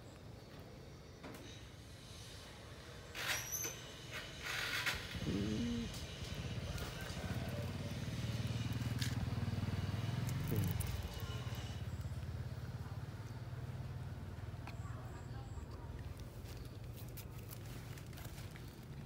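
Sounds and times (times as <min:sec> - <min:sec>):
vehicle engine running: 0:04.7 - 0:19.0.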